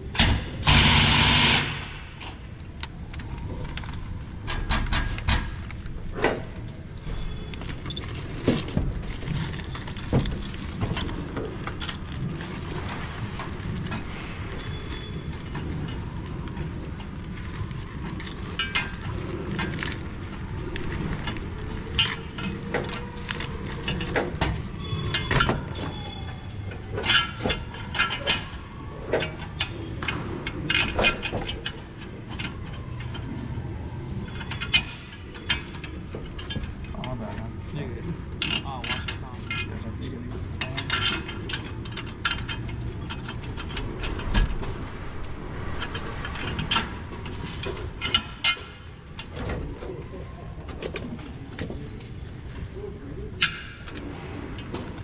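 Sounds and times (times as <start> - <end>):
metal clinks and knocks: 4.4 - 37.8, 38.4 - 49.8.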